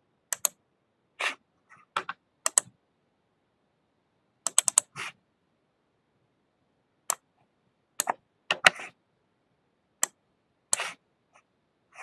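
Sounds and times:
keyboard and mouse clicks: 0.3s - 0.6s, 2.0s - 2.7s, 4.5s - 5.0s, 8.0s - 8.8s.

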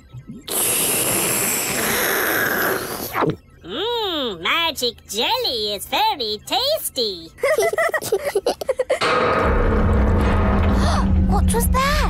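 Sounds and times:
cartoon slurping hiss: 0.5s - 3.3s.

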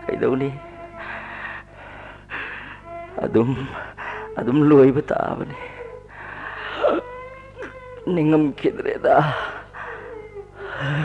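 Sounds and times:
person sobbing and wailing: 0.0s - 11.0s.

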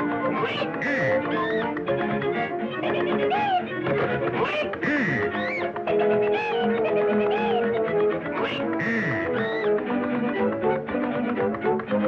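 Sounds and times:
cartoon orchestral music: 0.0s - 12.0s
quacking honk: 0.4s - 1.6s, 4.4s - 5.6s, 8.4s - 9.6s
sliding pitch effects: 4.4s - 7.8s, 8.4s - 9.8s.

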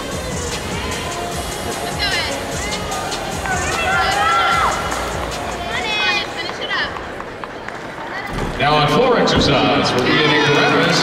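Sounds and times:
voices calling or singing: 0.0s - 6.4s
arena background music: 0.0s - 6.9s
crowd murmur: 0.0s - 11.0s.

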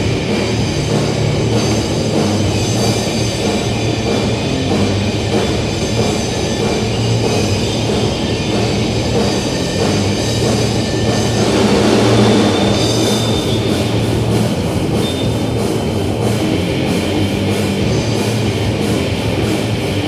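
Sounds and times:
drum kit: 0.0s - 20.0s
electric guitar: 0.0s - 20.0s.

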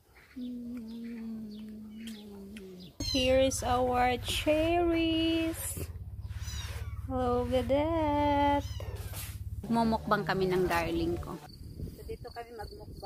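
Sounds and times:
steady low hum: 0.0s - 12.2s
woman humming sliding notes: 0.3s - 6.0s.

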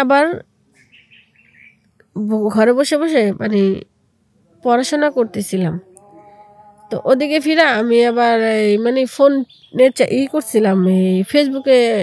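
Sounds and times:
woman speaking: 0.0s - 0.5s, 2.2s - 3.9s, 4.6s - 5.9s, 6.9s - 12.0s
faint bird chirps: 0.7s - 2.0s, 7.8s - 12.0s.

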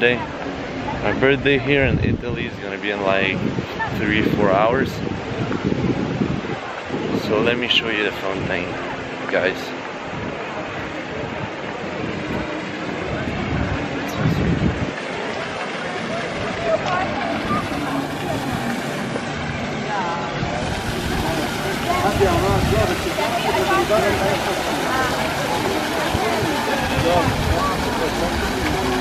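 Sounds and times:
crowd chattering: 0.0s - 29.0s
fountain water splashing: 0.0s - 29.0s
murmur of voices: 0.0s - 29.0s
steady rushing outdoor noise: 0.0s - 29.0s.

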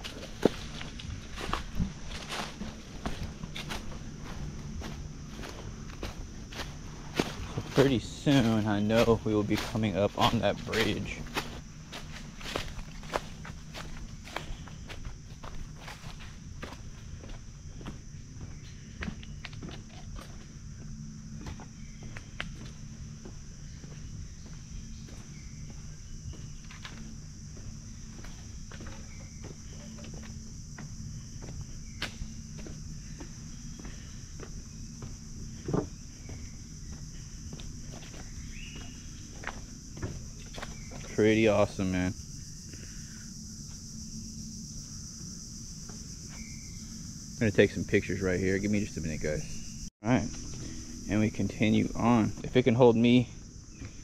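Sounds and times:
footsteps crunching on stony trail: 0.0s - 43.0s, 50.3s - 54.0s
high-pitched insect buzz: 0.0s - 54.0s.

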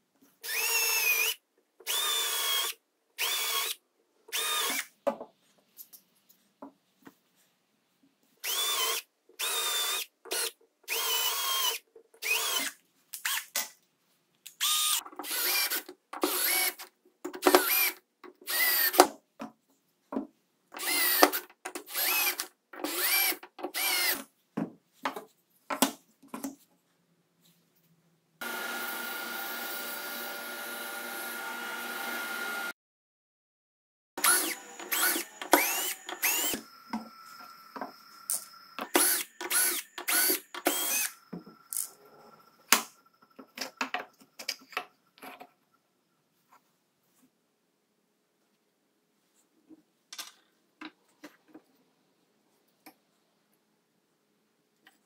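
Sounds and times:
cordless drill whining: 0.4s - 4.9s, 8.4s - 12.7s, 14.6s - 16.8s, 17.6s - 19.0s, 20.8s - 24.2s, 28.4s - 32.7s, 34.2s - 42.6s
table saw running: 28.4s - 32.7s, 34.2s - 41.2s.

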